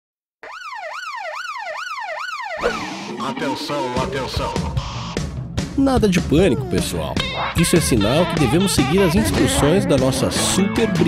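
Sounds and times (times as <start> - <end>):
alarm siren wailing: 0.4 - 5.3.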